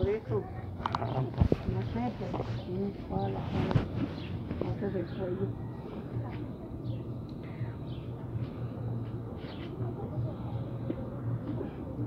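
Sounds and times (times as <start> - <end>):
people talking faintly: 0.0 - 12.0
steady low hum: 0.0 - 12.0.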